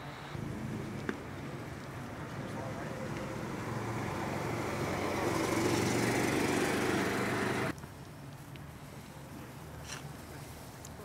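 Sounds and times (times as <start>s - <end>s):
engine running: 0.4s - 7.7s.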